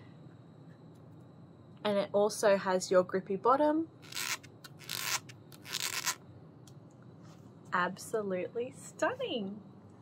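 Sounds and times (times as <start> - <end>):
fingers rubbing rubber sole: 4.0 - 6.2.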